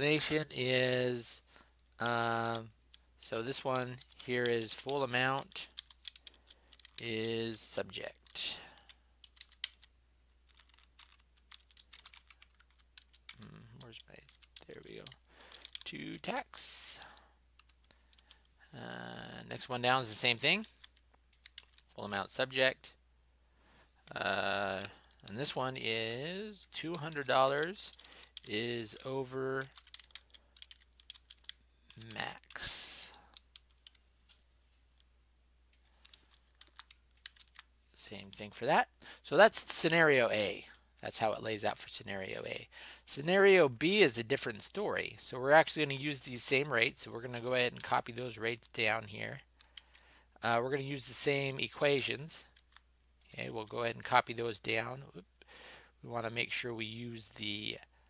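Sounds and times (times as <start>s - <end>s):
computer keyboard typing: 2.0s - 16.8s, 17.5s - 18.5s, 20.6s - 22.0s, 26.6s - 34.0s, 35.7s - 38.5s.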